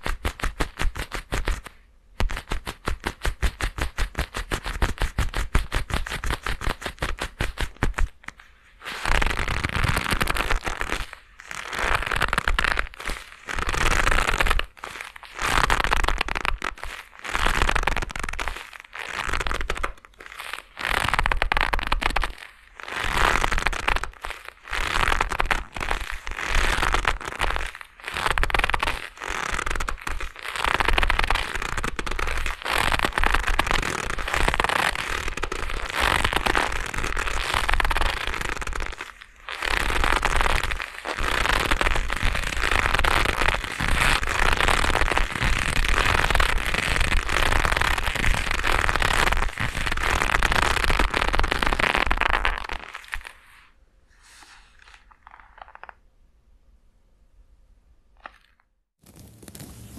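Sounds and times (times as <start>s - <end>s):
leather gloves creaking: 0.0s - 56.0s, 58.2s - 59.9s.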